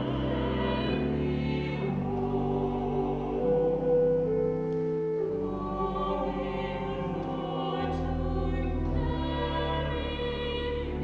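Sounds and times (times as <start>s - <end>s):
choir singing chords: 0.0s - 11.0s.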